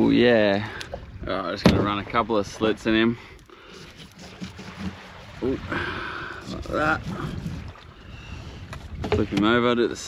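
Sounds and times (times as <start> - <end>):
small waves on beach: 0.0 - 10.0
knife scoring fish skin: 3.7 - 5.4, 6.4 - 7.7.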